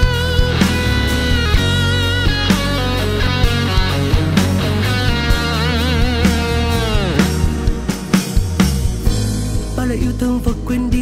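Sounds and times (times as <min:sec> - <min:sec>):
drum hits: 0:00.0 - 0:09.9
bass: 0:00.0 - 0:11.0
lead melody with vibrato: 0:00.0 - 0:11.0.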